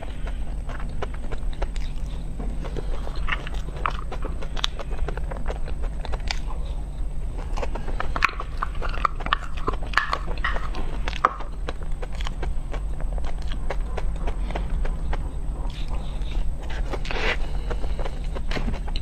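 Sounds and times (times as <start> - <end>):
close-miked chewing: 0.0 - 19.0
lip smacks and clicks: 0.0 - 19.0
steady low hum: 0.0 - 19.0.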